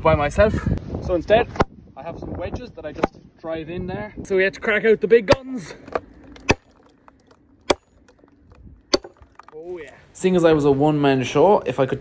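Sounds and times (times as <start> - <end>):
sledgehammer striking wedge: 8.9 - 9.2.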